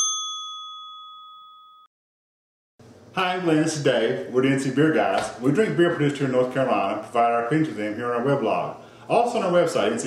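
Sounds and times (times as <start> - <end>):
bell-like ding: 0.0 - 1.9.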